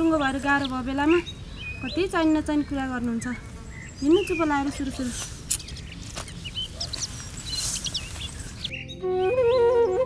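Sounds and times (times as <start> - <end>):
small birds chirping: 0.0 - 10.0
background music with held notes: 8.7 - 10.0.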